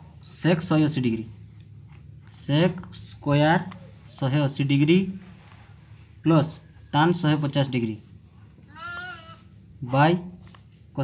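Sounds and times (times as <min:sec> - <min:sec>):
faint animal bleat: 0:08.7 - 0:09.5.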